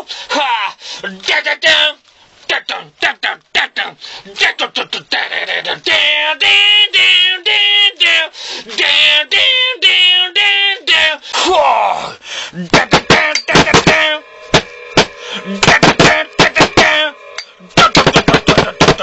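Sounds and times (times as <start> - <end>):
man singing buzzy notes: 2.6 - 11.2, 12.5 - 19.0
man vocalizing percussive pops: 12.7 - 14.0.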